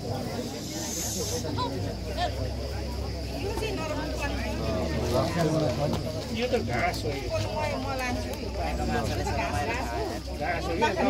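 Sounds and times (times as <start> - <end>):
people's voices: 0.0 - 11.0
hiss: 0.3 - 1.7.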